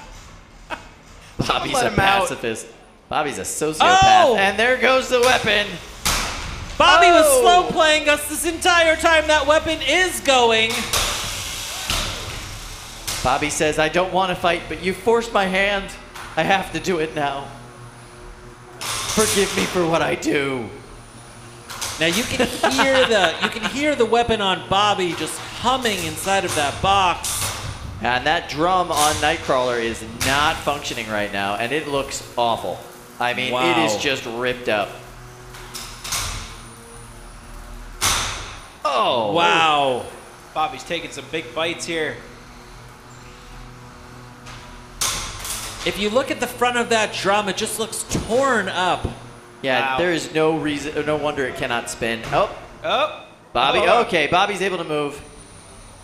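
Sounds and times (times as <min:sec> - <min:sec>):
noisy rush: 0:01.2 - 0:43.2.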